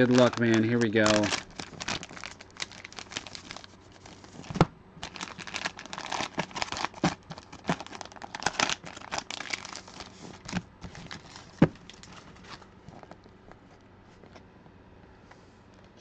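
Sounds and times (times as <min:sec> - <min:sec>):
plastic pouches crinkling and tearing: 0:00.0 - 0:13.0.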